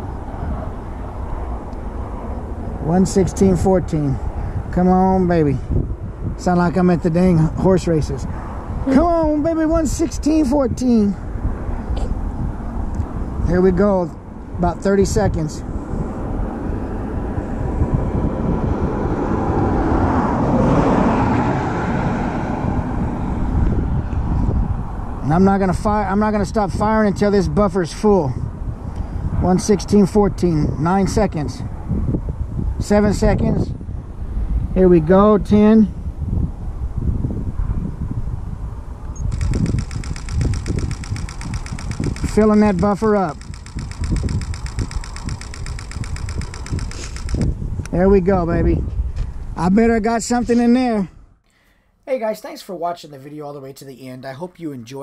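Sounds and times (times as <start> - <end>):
wind rumbling on microphone: 0.0 - 51.4
passing vehicle: 11.1 - 27.5, 35.9 - 48.1
camera shutter burst: 39.3 - 47.5.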